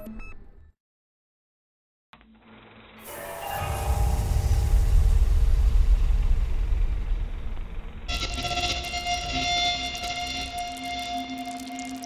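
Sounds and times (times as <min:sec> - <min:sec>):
deep rumble: 0:03.7 - 0:11.0
sustained ringing chord: 0:08.1 - 0:12.0.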